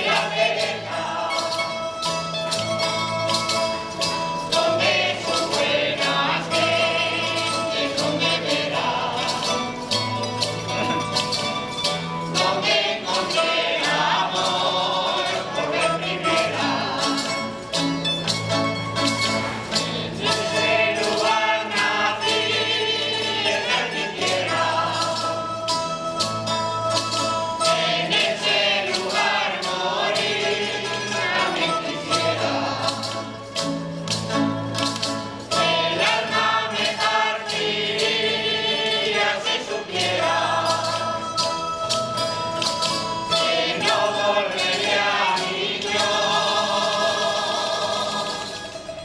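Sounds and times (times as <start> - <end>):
choir singing in unison: 0.0 - 1.9, 4.4 - 9.9, 12.3 - 17.6, 19.5 - 25.9, 27.5 - 33.4, 35.4 - 41.5, 43.3 - 48.7
strummed and plucked guitars: 0.0 - 49.0.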